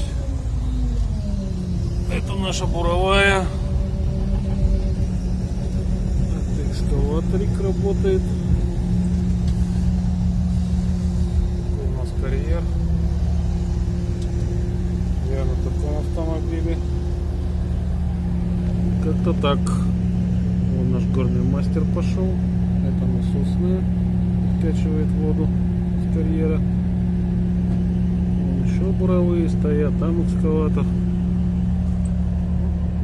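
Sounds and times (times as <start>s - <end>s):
diesel truck engine running: 0.0s - 33.0s.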